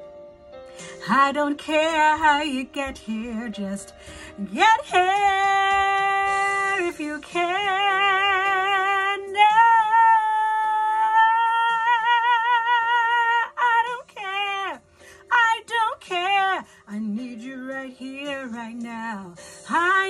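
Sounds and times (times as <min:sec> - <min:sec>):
woman singing a soul ballad: 0:00.8 - 0:20.0.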